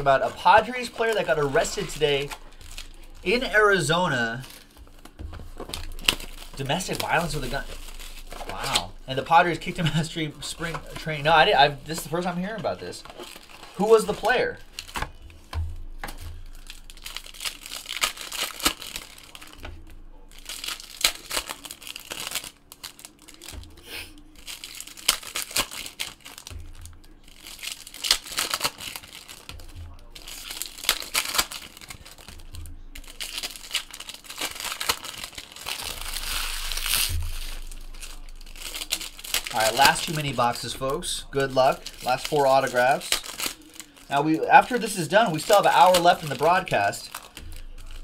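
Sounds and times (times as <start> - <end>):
card pack wrappers tearing: 0.0 - 48.0.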